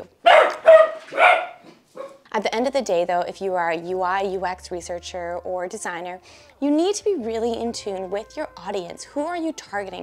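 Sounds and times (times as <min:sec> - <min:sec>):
dog barking: 0:00.2 - 0:02.2.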